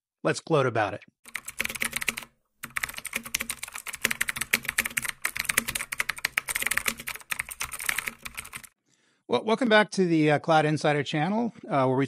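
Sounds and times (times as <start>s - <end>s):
rapid keyboard typing: 1.3s - 8.8s.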